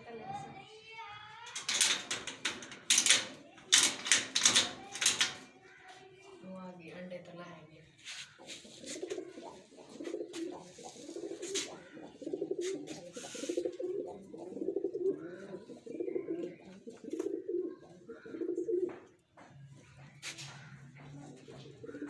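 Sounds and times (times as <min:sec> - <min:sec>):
brief scuffing noises: 0:08.0 - 0:09.2, 0:11.4 - 0:11.8, 0:20.2 - 0:20.8
pigeons cooing: 0:08.1 - 0:19.2, 0:20.2 - 0:22.0.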